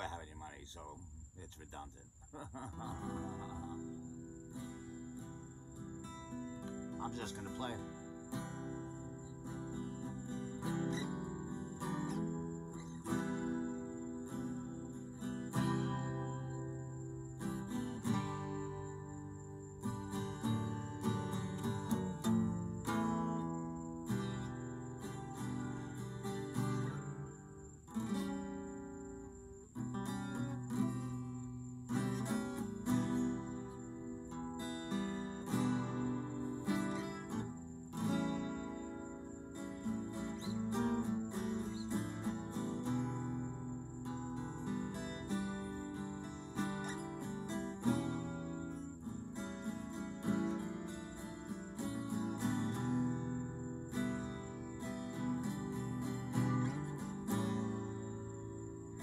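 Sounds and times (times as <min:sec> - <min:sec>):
acoustic guitar strumming: 0:02.4 - 0:59.0.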